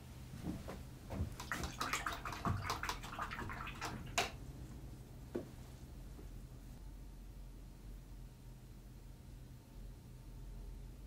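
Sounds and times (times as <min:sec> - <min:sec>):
paintbrush splashing in water jar: 0:01.3 - 0:04.4.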